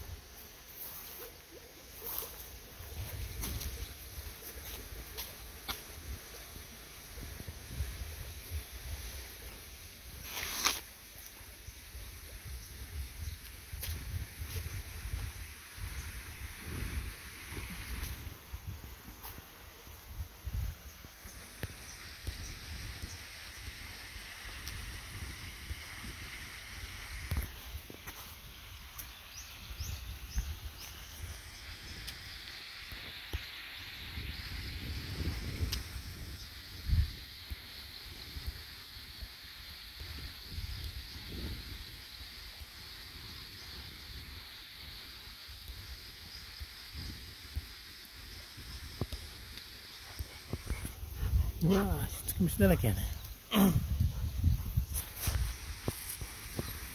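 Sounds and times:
wind rumbling on microphone: 2.6 - 10.7, 11.8 - 28.6, 29.3 - 39.3, 40.0 - 45.0, 45.6 - 56.9.

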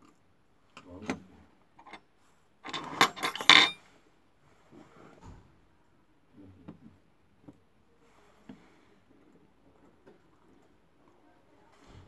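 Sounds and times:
metal tools clattering on bench: 2.7 - 3.8.

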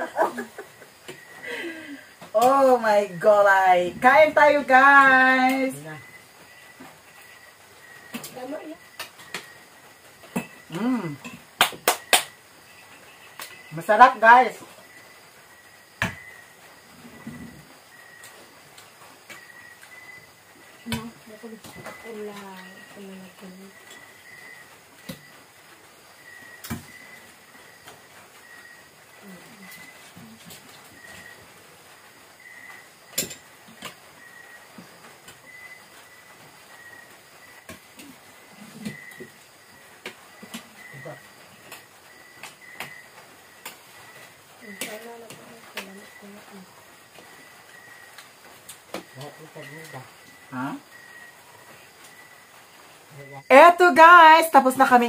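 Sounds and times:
faint steady hiss: 0.0 - 55.0.

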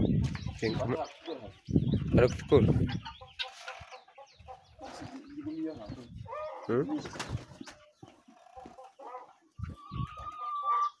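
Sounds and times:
chickens clucking: 0.0 - 11.0
long steady chicken call: 7.9 - 11.0.

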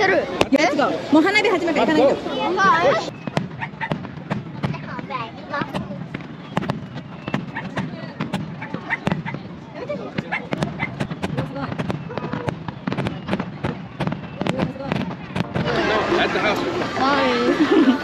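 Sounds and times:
fireworks bursting with bangs: 3.1 - 17.7.

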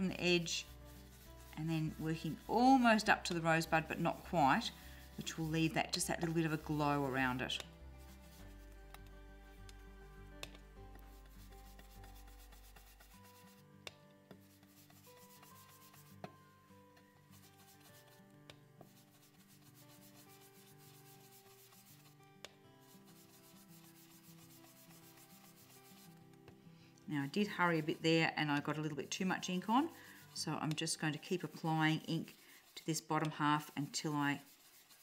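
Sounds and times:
brush rubbing on cardstock: 0.0 - 13.6, 14.4 - 16.2, 17.3 - 18.2, 18.8 - 22.2, 22.8 - 26.2, 27.2 - 35.0.

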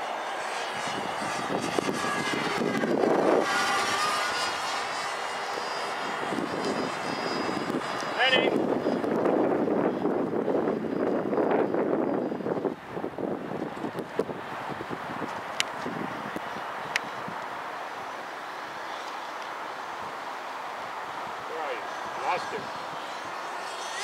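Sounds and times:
wind on microphone: 0.0 - 18.2, 19.8 - 24.0.

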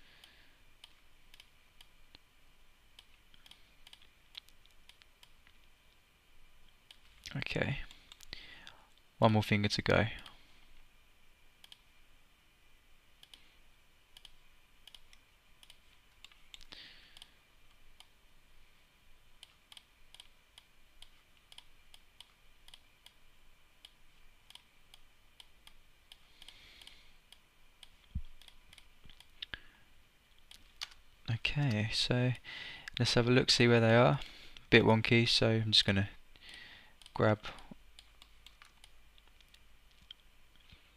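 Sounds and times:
computer mouse clicks: 0.2 - 1.9, 3.0 - 5.6, 11.6 - 11.9, 13.2 - 13.5, 14.2 - 17.3, 19.4 - 23.2, 23.8 - 29.3, 36.5 - 40.2.

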